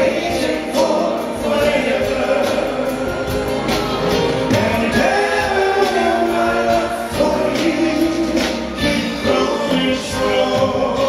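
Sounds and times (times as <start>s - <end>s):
band playing: 0.0s - 11.0s
vocal group singing in harmony: 0.0s - 11.0s.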